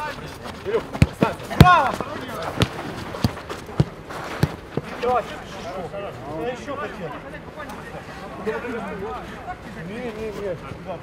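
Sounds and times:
players shouting: 0.0 - 5.3
boot kicking football: 0.7 - 5.2.

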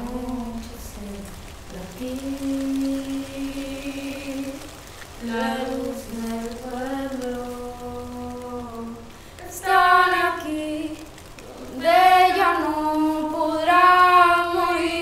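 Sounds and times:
chant-like singing: 0.0 - 15.0.

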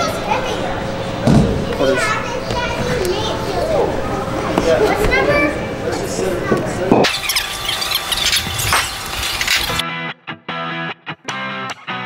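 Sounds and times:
shoes squeaking on tile floor: 7.0 - 9.8.

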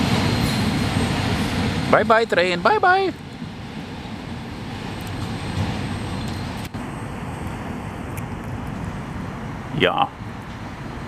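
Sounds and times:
distant city traffic rumble: 0.0 - 11.0.

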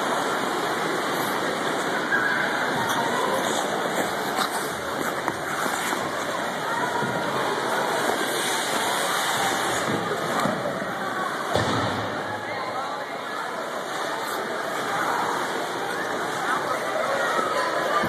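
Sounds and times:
many indistinct voices: 0.0 - 18.0
skate blades scraping ice: 0.2 - 10.8, 13.8 - 18.0.

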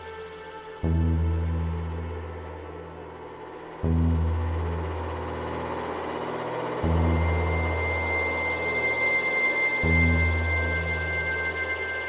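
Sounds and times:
ambient synthesizer music: 0.0 - 12.0
deep bass note: 3.8 - 5.6
thin steady high tone: 4.0 - 12.0.

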